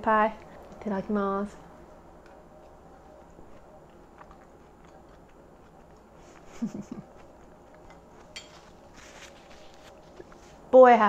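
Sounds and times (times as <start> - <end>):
person chewing cake: 0.3 - 0.8, 1.8 - 10.7.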